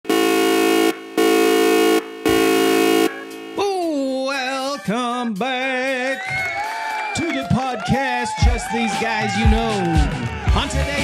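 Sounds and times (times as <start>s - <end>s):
horn-like blasts: 0.0s - 3.9s
music: 3.3s - 11.0s
person singing: 3.5s - 6.3s.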